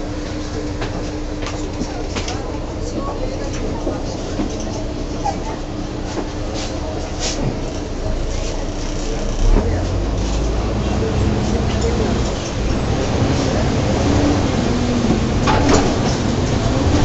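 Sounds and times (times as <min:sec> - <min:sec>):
bus diesel engine running: 0:00.0 - 0:17.0.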